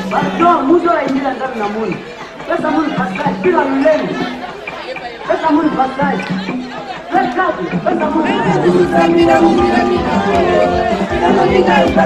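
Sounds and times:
background music: 0.0s - 12.0s
voices chattering: 0.0s - 12.0s.

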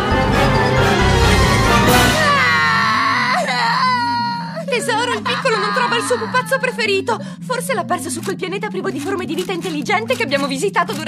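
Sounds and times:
cartoon child wailing and sobbing: 2.1s - 6.8s.

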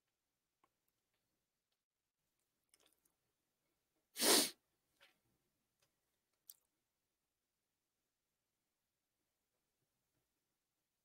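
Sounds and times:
person sharp breath: 4.2s - 4.6s.

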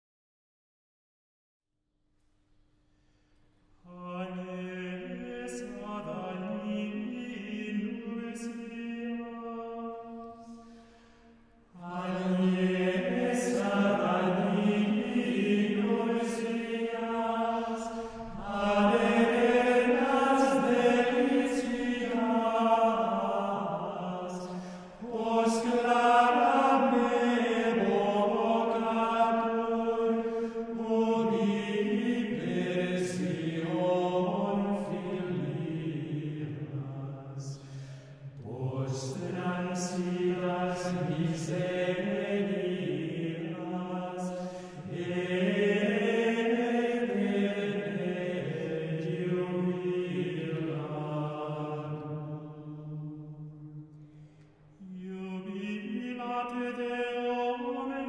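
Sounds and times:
men singing plainchant in unison: 11.8s - 37.0s, 38.4s - 51.9s.

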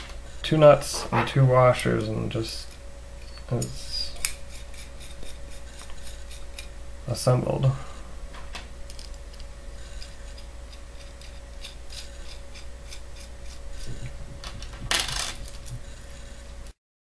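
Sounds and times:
faint steady hum: 0.0s - 16.8s.

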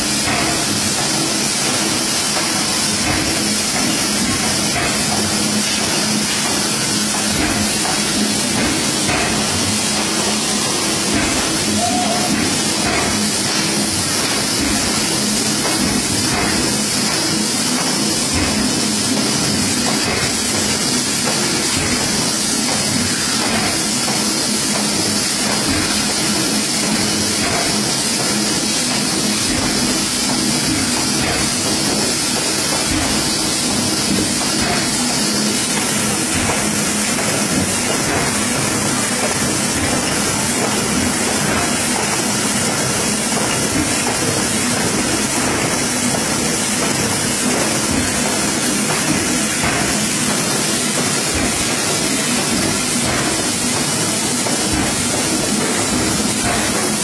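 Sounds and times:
machine whirring with high hiss: 0.0s - 57.0s.

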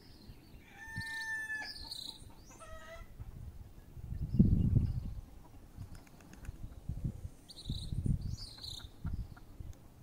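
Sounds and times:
rooster crowing: 0.6s - 1.8s.

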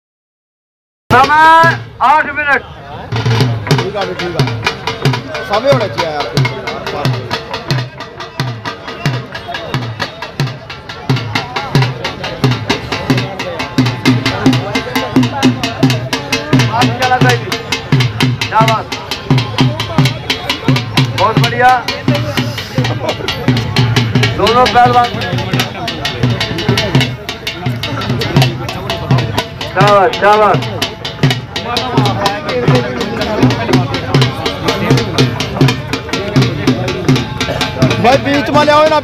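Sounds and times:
dhol drum beating: 1.1s - 39.0s.

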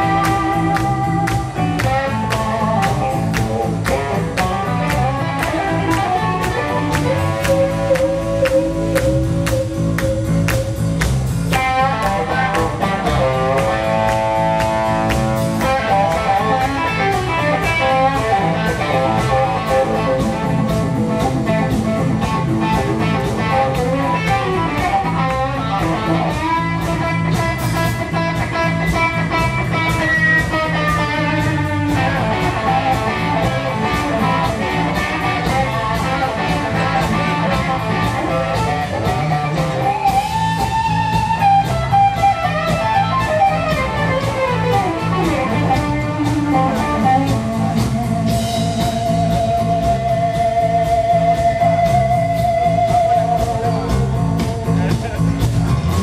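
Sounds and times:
bass guitar: 0.0s - 56.0s
drums: 0.0s - 56.0s
electric guitar lead with bends: 0.0s - 56.0s.

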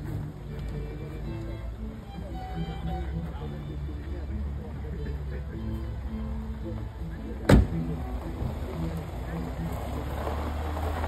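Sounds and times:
car engine humming: 0.0s - 11.0s
people talking: 0.0s - 11.0s.

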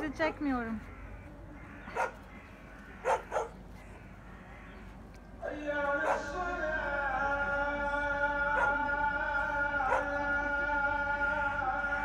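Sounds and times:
dog barking: 1.9s - 2.2s, 3.0s - 3.6s, 6.0s - 6.3s, 8.6s - 8.8s, 9.8s - 10.2s.

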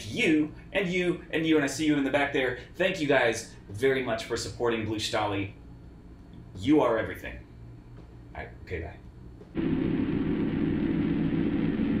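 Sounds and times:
steady low rumble: 7.4s - 12.0s.

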